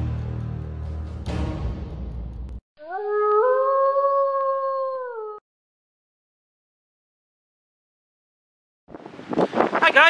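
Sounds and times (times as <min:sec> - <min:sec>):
intro music: 0:00.0 - 0:02.6
wolf howl: 0:02.8 - 0:05.4.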